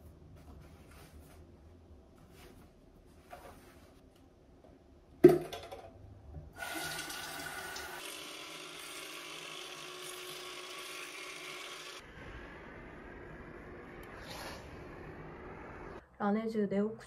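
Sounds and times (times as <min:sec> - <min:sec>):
water flosser pump humming: 0:06.4 - 0:12.0.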